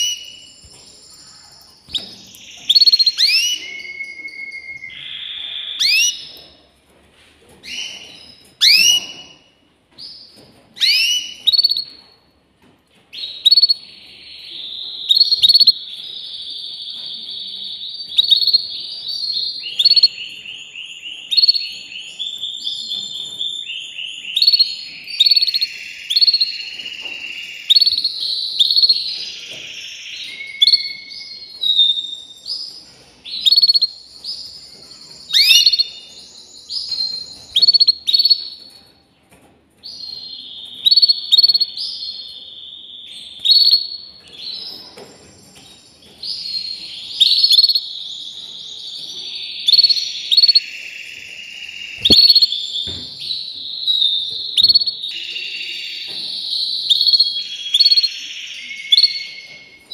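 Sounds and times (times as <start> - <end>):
canary singing trills: 0.0 - 6.6, 7.6 - 12.2, 13.1 - 38.8, 39.8 - 59.9.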